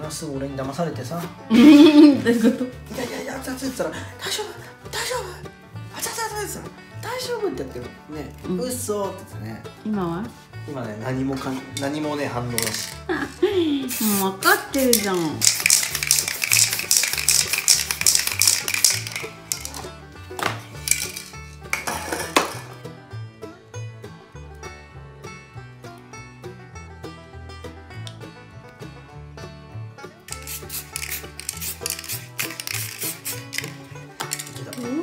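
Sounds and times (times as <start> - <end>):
background music with bass line: 0.0 - 35.0
spray can hissing bursts: 12.6 - 13.0, 13.8 - 19.8, 30.3 - 34.6.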